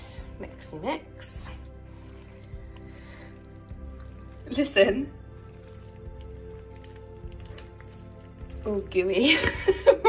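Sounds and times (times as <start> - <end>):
quiet background music: 0.0 - 10.0
wet squelching of stirred mixture: 0.0 - 10.0.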